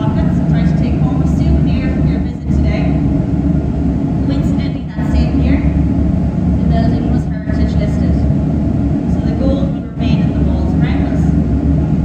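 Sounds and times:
woman talking: 0.0s - 3.0s, 4.2s - 5.8s, 6.6s - 8.3s, 9.1s - 11.4s
low rumble of machinery: 0.0s - 12.0s.

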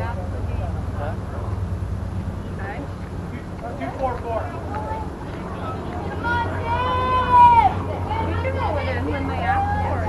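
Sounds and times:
steady low rumble: 0.0s - 10.0s
players and spectators calling out: 4.5s - 10.0s.

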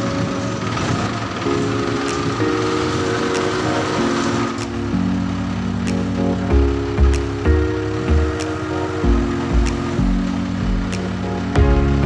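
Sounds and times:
background music with sustained chords: 0.0s - 12.0s
diesel truck engine running: 0.0s - 12.0s.

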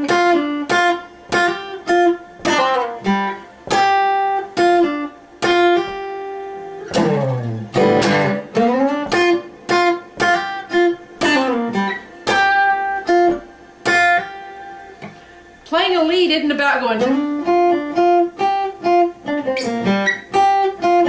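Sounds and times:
acoustic guitar blues riff: 0.0s - 21.0s.

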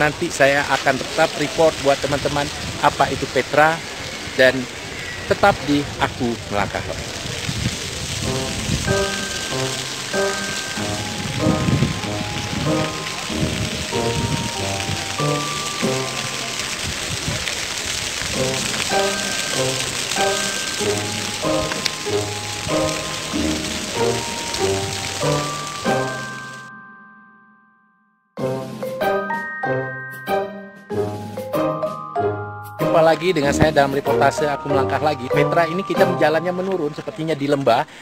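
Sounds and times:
fountain jets splashing: 0.0s - 26.7s, 32.7s - 38.0s
simple melodic music: 8.2s - 16.9s, 18.3s - 37.3s.

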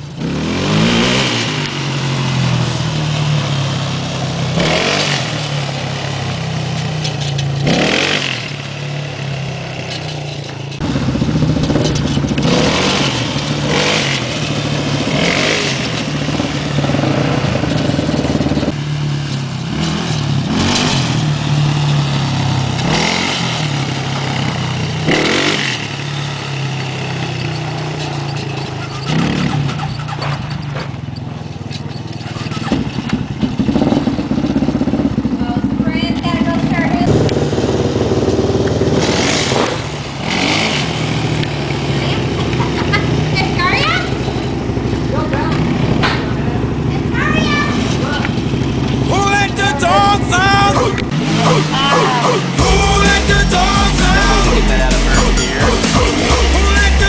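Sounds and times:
quad bike engine revving: 0.0s - 57.0s.

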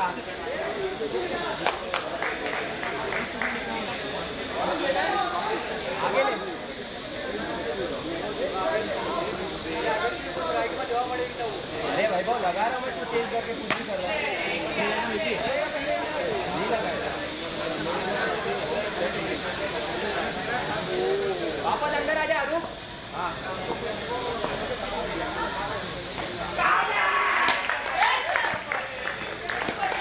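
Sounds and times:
people shouting and chattering: 0.0s - 30.0s.

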